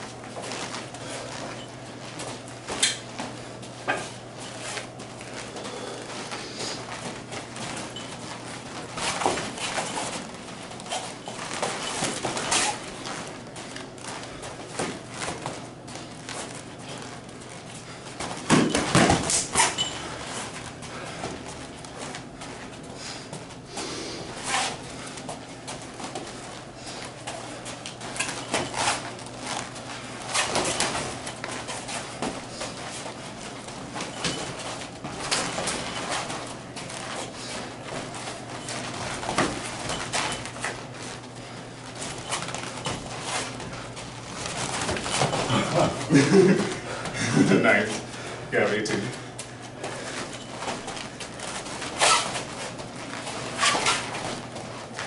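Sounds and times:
feet shuffling on mats: 0:00.0 - 0:55.0.

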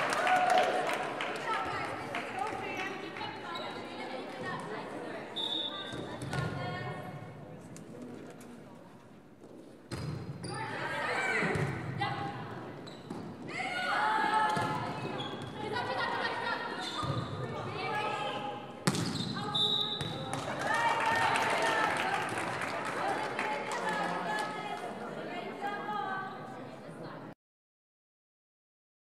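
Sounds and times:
voices in a gymnasium: 0:00.0 - 0:27.4
volleyball hits and thuds: 0:18.8 - 0:19.2.

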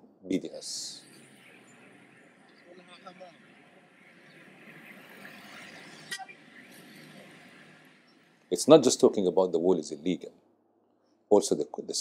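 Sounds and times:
street background noise: 0:00.0 - 0:11.6.

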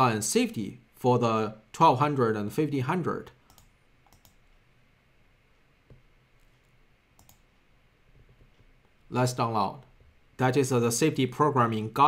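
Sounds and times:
computer mouse clicks: 0:03.4 - 0:04.6, 0:05.9 - 0:09.0.

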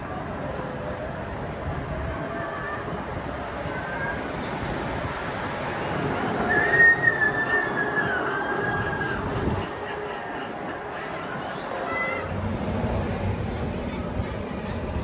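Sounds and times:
ride mechanical rumble: 0:00.0 - 0:15.0
high wavering squeal: 0:06.3 - 0:09.7.

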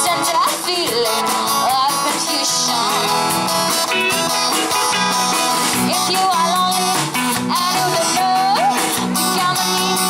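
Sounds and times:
woman singing: 0:00.0 - 0:03.4, 0:05.7 - 0:10.0
bass guitar: 0:00.0 - 0:10.0
drum kit: 0:00.0 - 0:10.0
electric guitar: 0:00.0 - 0:10.0
strummed acoustic guitar: 0:02.4 - 0:10.0.

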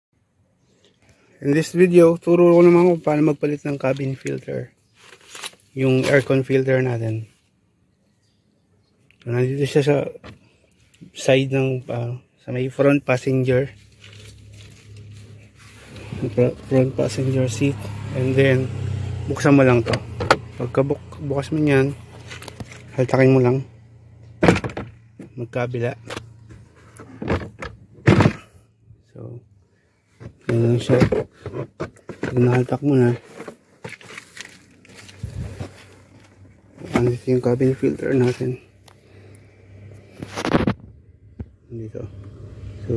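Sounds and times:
car interior hum: 0:13.9 - 0:28.2, 0:34.5 - 0:42.9
dull thump: 0:24.4 - 0:25.0
faint rustling: 0:29.8 - 0:39.3.

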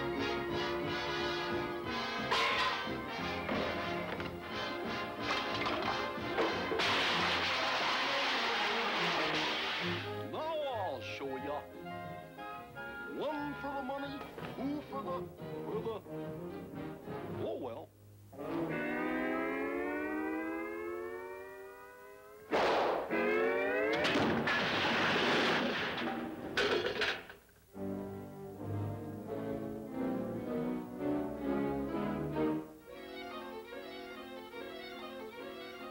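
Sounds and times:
metal pots crashing down: 0:02.2 - 0:04.2, 0:05.2 - 0:10.1, 0:24.0 - 0:27.4
cartoon music: 0:18.4 - 0:21.7, 0:23.1 - 0:24.1.

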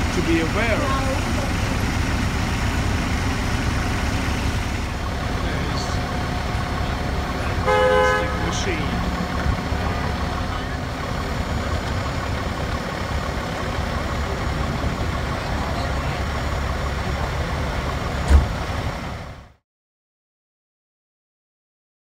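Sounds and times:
city street noise: 0:00.0 - 0:19.6
diesel engine idling: 0:00.0 - 0:19.6
loud thump: 0:18.2 - 0:18.6.

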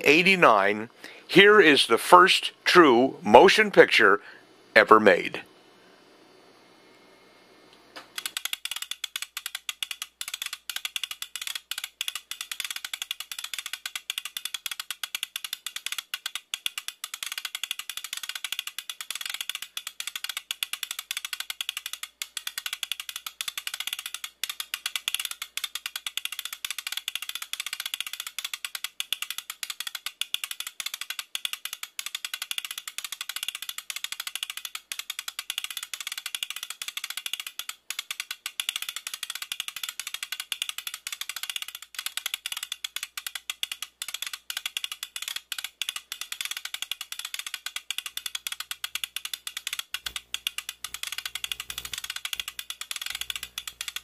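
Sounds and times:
film projector clattering: 0:08.1 - 0:54.0.

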